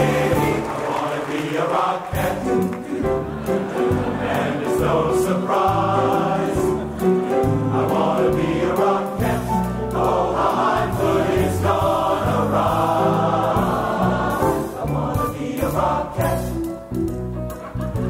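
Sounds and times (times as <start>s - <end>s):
men's chorus singing: 0.0s - 16.7s
pit band playing show tune: 0.0s - 18.0s.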